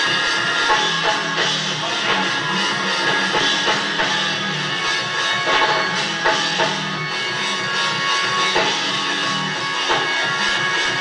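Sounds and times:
live gospel music: 0.0 - 11.0.

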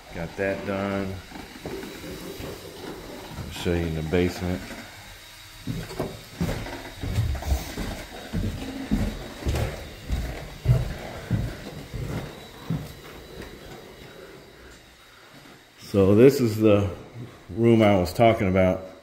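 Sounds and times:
footsteps going down stairs: 1.2 - 4.0, 5.6 - 15.6.

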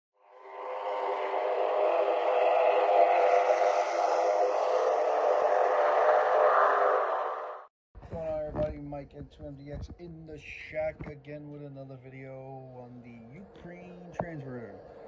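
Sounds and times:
dense intro music with held tones: 0.2 - 7.7.

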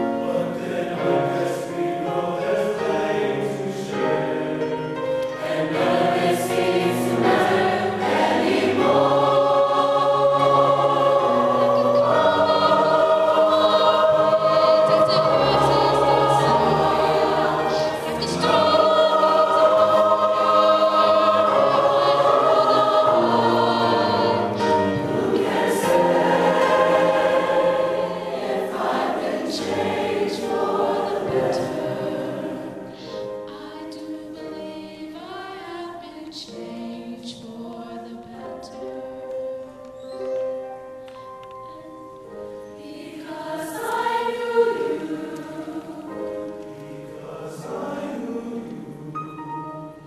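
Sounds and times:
mixed choir singing chords: 0.0 - 39.2, 42.3 - 50.0.

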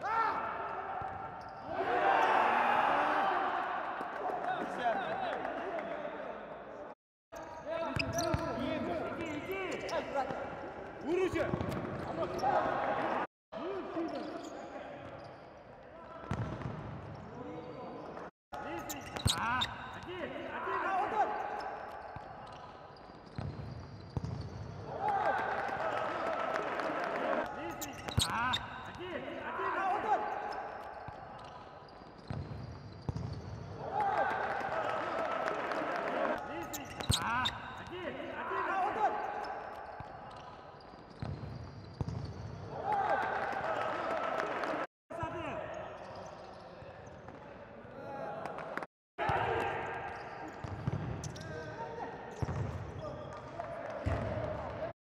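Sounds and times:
players shouting: 0.0 - 6.0, 42.7 - 44.9, 49.2 - 50.6
ball kicked and bouncing: 41.2 - 42.4.

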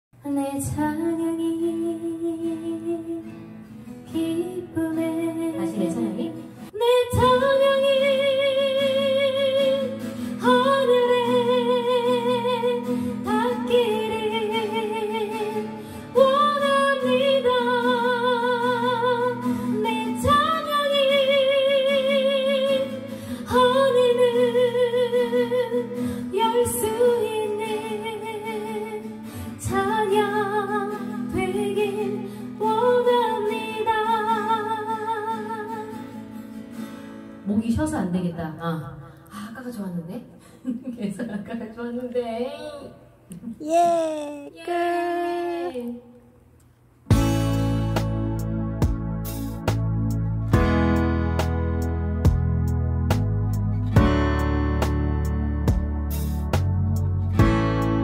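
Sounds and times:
woman singing with vibrato: 0.2 - 3.3, 4.1 - 36.1, 43.6 - 46.4
acoustic guitar: 0.2 - 39.3, 47.0 - 58.0.

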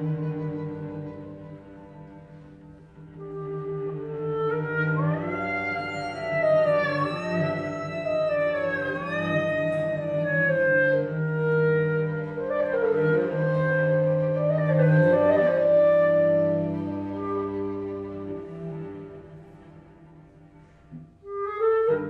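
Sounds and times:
clarinet violin and cello trio: 0.0 - 22.0.

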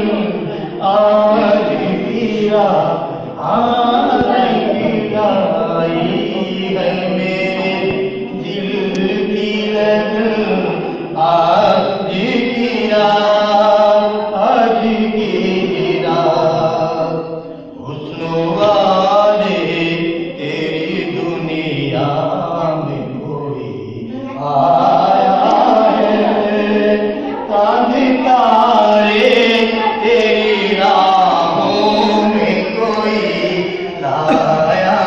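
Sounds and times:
man singing through loudspeaker: 0.0 - 35.0.

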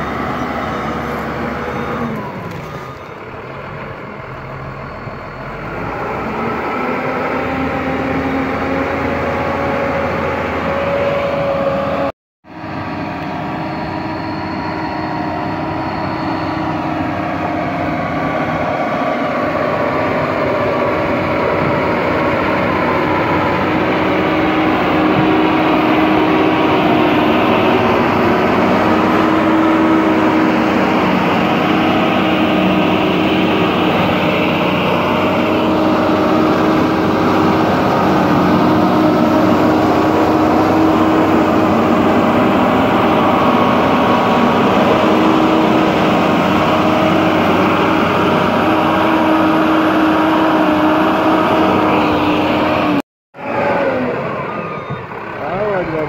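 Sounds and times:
diesel engine running: 0.0 - 56.0.

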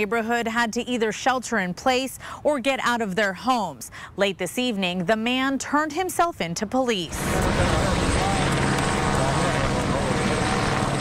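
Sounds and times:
helicopter rotor chop: 7.1 - 11.0.

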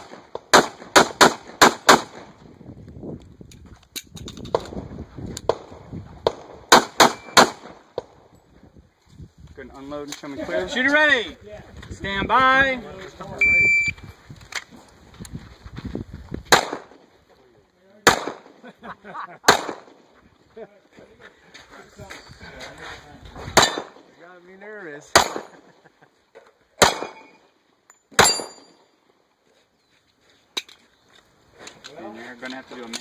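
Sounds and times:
pistol shots: 0.0 - 2.3, 6.3 - 8.1, 16.5 - 17.1, 18.0 - 18.6, 19.4 - 20.0, 23.6 - 24.1, 25.1 - 25.7, 26.8 - 27.4, 28.2 - 28.8
steel targets ringing: 28.2 - 28.8.

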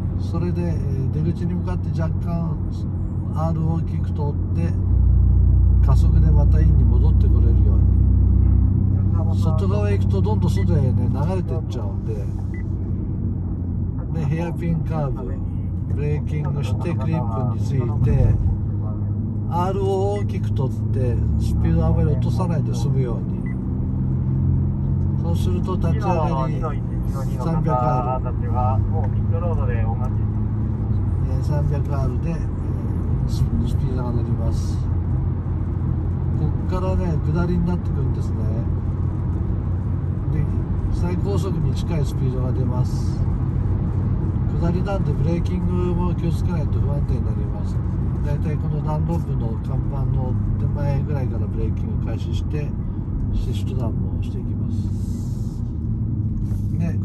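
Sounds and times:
car engine running: 0.0 - 57.0
tyre and road noise: 0.0 - 57.0.

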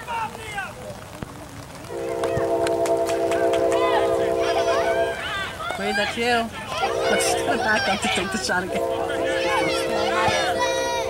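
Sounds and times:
horn sounding a chord: 1.9 - 5.6, 6.7 - 11.0.

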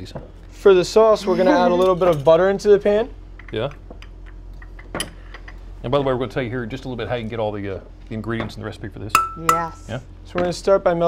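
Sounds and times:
metal spoon clinking on cookware: 9.2 - 9.5.

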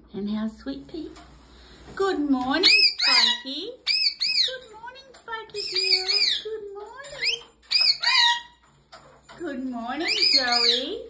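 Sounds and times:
parrot chirping calls: 2.6 - 8.7, 10.0 - 11.0.

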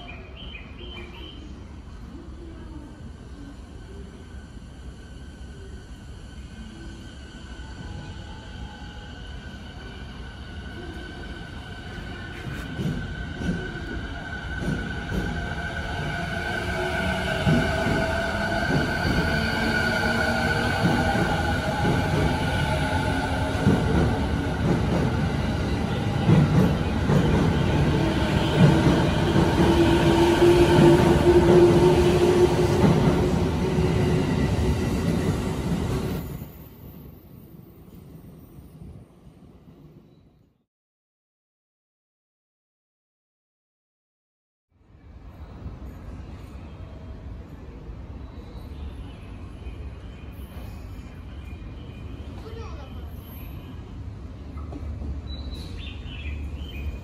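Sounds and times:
wheels rumbling on rail: 8.0 - 37.8.

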